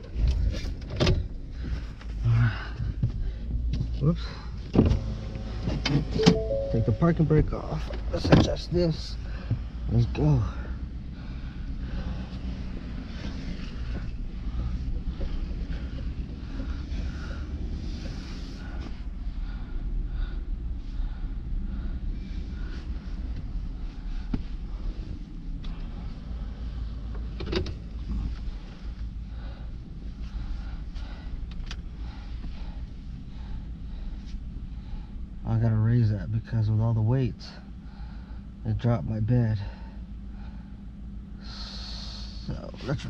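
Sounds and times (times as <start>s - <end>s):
light clicks and knocks in cab: 0.0s - 6.6s, 7.6s - 10.8s, 22.8s - 26.2s, 27.0s - 33.0s
truck engine low rumble: 0.0s - 43.0s.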